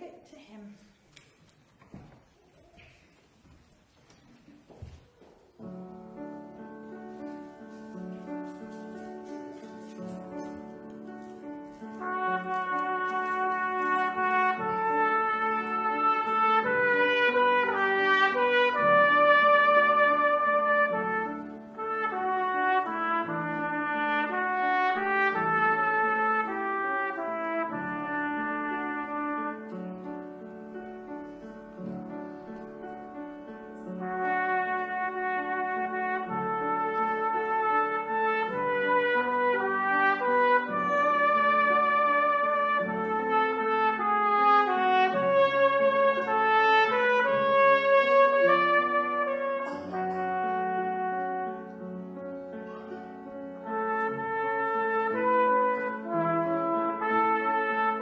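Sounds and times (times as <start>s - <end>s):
piano accompaniment: 5.0s - 58.0s
cornet playing slow melody: 6.5s - 30.4s, 33.8s - 52.9s, 53.6s - 58.0s.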